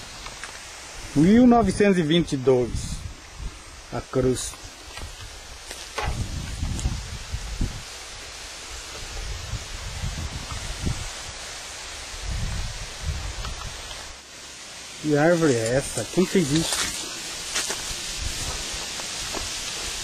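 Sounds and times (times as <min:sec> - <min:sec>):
outdoor rustle: 0:00.0 - 0:20.0
wind buffeting microphone: 0:02.6 - 0:11.4, 0:12.0 - 0:14.1, 0:16.7 - 0:20.0.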